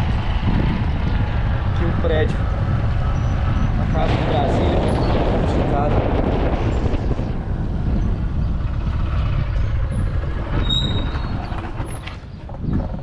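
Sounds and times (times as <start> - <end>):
low rumble of moving vehicle: 0.0 - 13.0
wind on microphone: 0.0 - 13.0.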